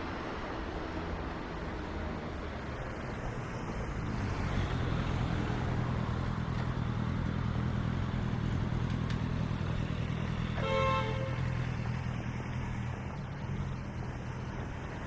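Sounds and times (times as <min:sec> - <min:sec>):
traffic engine hum: 0:00.0 - 0:15.0.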